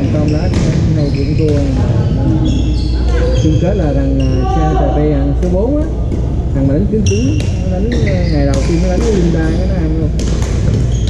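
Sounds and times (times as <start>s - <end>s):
sneakers squeaking on hardwood: 0.0s - 4.6s, 7.0s - 11.0s
background talk: 0.0s - 10.2s.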